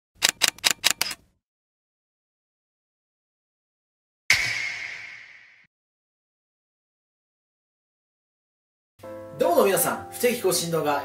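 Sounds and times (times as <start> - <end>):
sharp typing-like clacks: 0.2 - 1.2.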